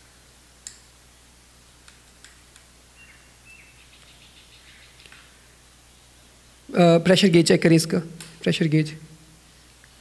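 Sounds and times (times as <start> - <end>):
faint high chirps: 3.0 - 5.3.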